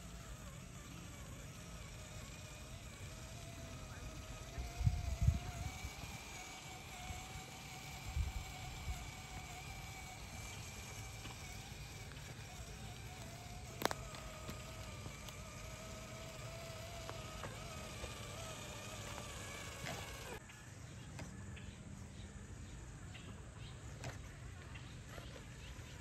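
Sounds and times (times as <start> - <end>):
toy motor and gearbox whining: 0.0 - 22.6, 23.4 - 26.0.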